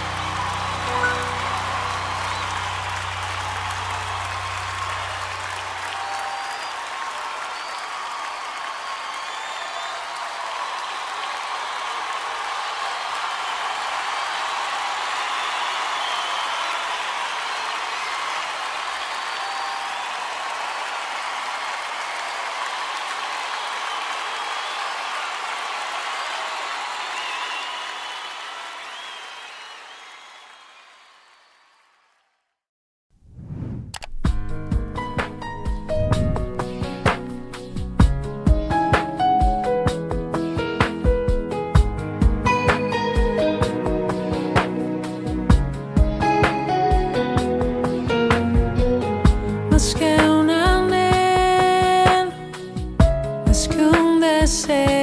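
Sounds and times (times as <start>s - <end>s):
scattered cheers: 0.0s - 32.2s
audience applause: 0.0s - 32.5s, 35.5s - 37.9s.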